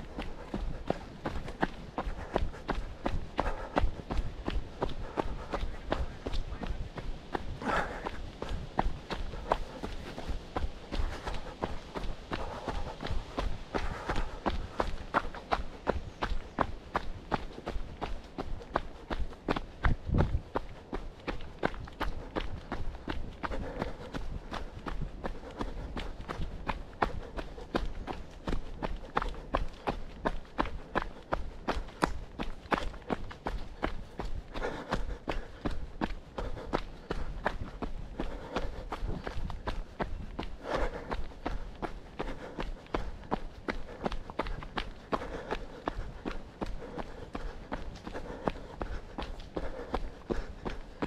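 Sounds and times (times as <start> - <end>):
running footsteps on gravel: 0.0 - 51.0.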